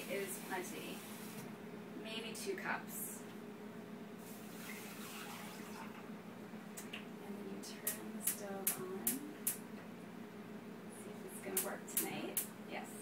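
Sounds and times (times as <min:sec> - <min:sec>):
water pouring into a pot: 0:04.4 - 0:06.0.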